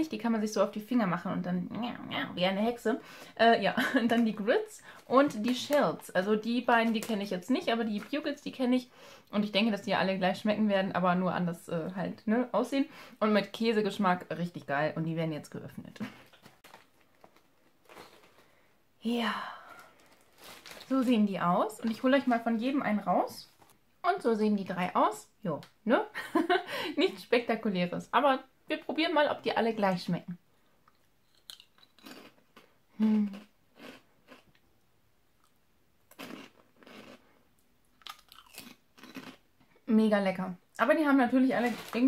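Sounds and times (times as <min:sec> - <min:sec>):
crunchy snacks being chewed: 0:30.9 - 0:34.6, 0:35.4 - 0:37.3, 0:37.9 - 0:39.5.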